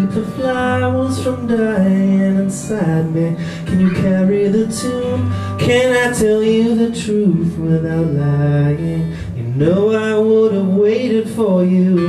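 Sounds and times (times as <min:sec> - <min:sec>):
man singing long notes: 0:00.0 - 0:12.0.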